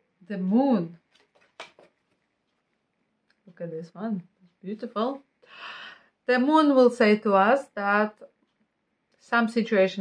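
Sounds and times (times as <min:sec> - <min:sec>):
cards rustling and clicking: 0:01.1 - 0:02.3.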